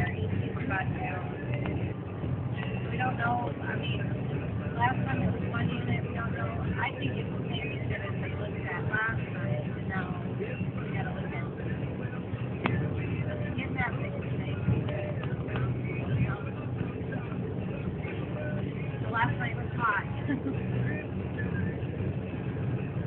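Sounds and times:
car interior road rumble: 0.0s - 23.0s
indistinct voices talking: 0.0s - 23.0s.

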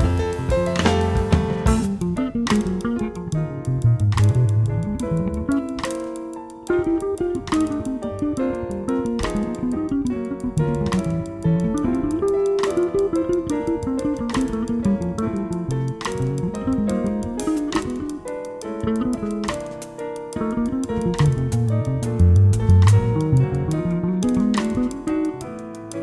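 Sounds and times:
drums and cymbals: 0.0s - 2.0s
plucked string jazz line: 0.0s - 26.0s.

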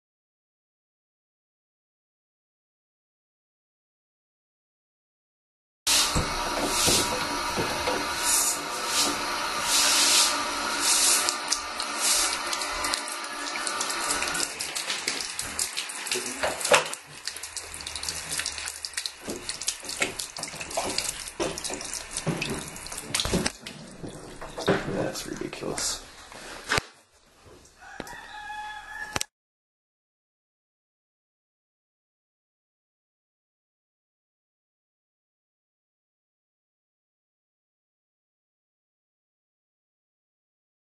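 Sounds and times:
water spraying and splashing: 5.9s - 26.2s
water leak whistling and hiss: 8.2s - 14.6s.

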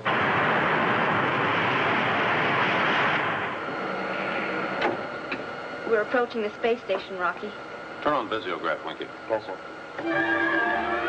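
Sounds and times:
rocket engine rushing noise: 0.0s - 5.2s.

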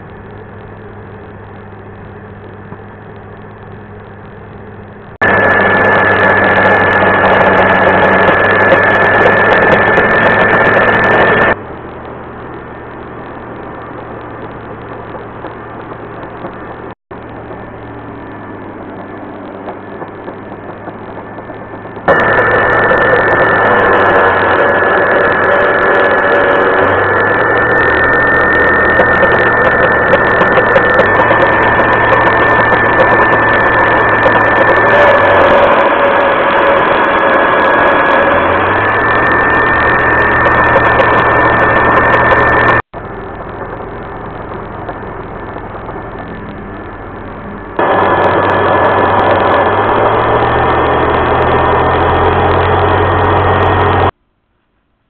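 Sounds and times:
low machine hum: 0.0s - 55.0s
router spindle whining: 5.2s - 54.2s.

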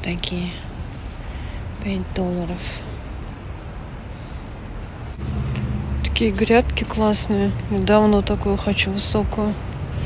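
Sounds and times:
motor vehicle rumble: 0.0s - 10.0s.

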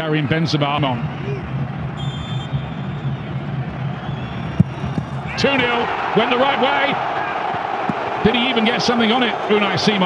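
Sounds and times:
stadium crowd rumble: 0.1s - 10.0s
referee whistle: 2.0s - 3.2s.

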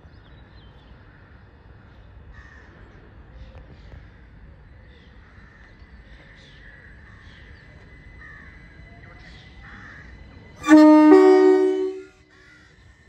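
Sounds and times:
electric train two-tone horn: 10.6s - 12.4s.

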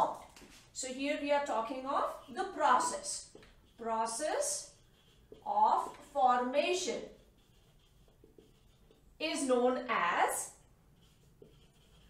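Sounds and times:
marker writing on whiteboard: 0.0s - 12.0s.

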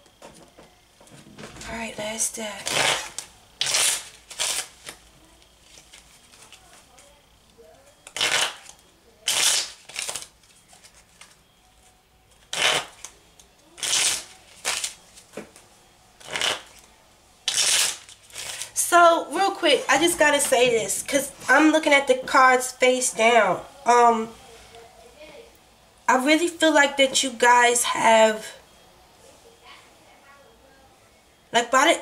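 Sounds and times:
cards being shuffled: 16.2s - 16.9s.

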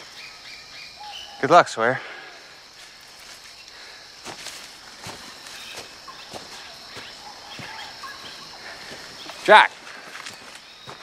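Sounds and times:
insects humming: 0.0s - 11.0s
leaves rustling: 2.0s - 11.0s
footsteps on undergrowth: 2.6s - 11.0s.

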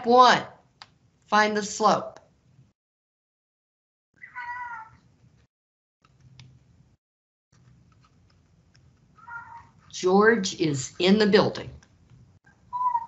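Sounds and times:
cat meowing: 4.2s - 5.0s, 9.2s - 9.8s.

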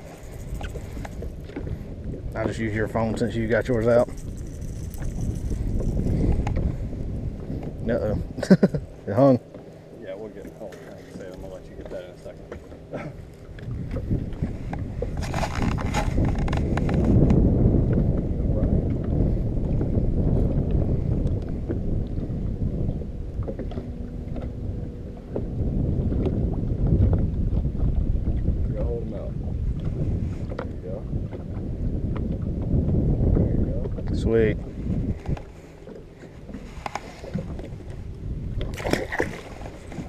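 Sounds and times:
wind buffeting microphone: 0.0s - 9.5s, 10.1s - 40.0s
sharp clicks and rattles: 3.8s - 6.1s.

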